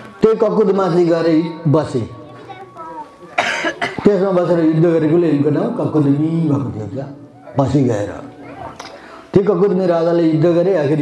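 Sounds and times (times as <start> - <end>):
man coughing: 3.4 - 4.0.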